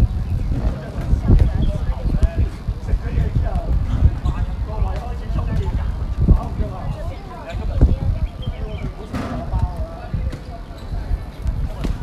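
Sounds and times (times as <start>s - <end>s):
distant people chatting: 0.0s - 12.0s.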